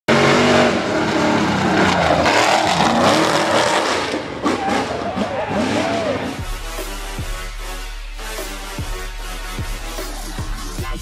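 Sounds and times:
engine at full throttle: 0:00.1 - 0:06.5
spectators' voices: 0:04.4 - 0:06.4.

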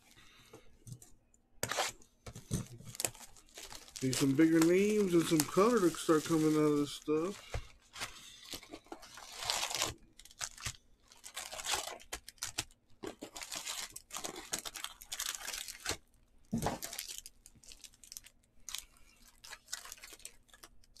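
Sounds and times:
plastic wrappers crinkling: 0:02.3 - 0:21.0.

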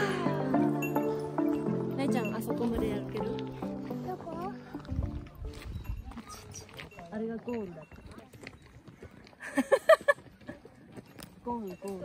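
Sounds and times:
person laughing: 0:09.4 - 0:10.2.

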